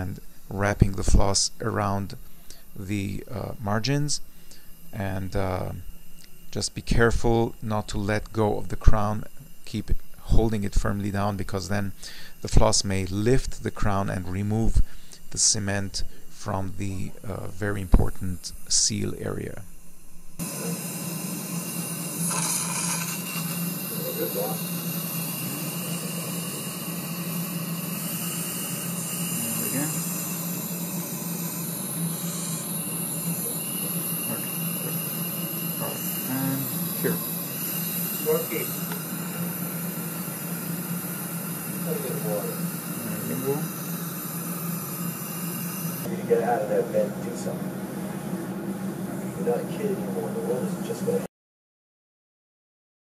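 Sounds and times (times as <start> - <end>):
dental equipment hiss and hum: 0.0 - 51.3
bright rush of air: 20.4 - 46.1.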